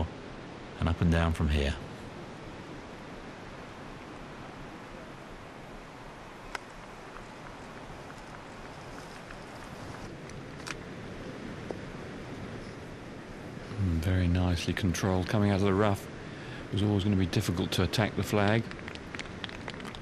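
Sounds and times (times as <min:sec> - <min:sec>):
wind noise: 0:00.0 - 0:20.0.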